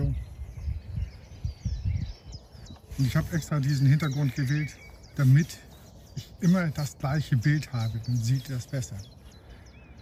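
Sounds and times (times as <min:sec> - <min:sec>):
faint birds chirping: 0:00.0 - 0:10.0
wind buffeting microphone: 0:00.0 - 0:10.0.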